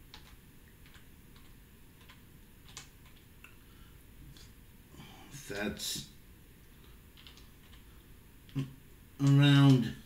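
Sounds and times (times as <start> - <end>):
keyboard keystrokes: 0.1 - 3.3, 7.2 - 7.8, 8.5 - 9.8.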